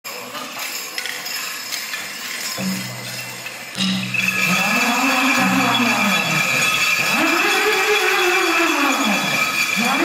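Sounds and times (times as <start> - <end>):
metal jingles clinking: 0.1 - 10.0.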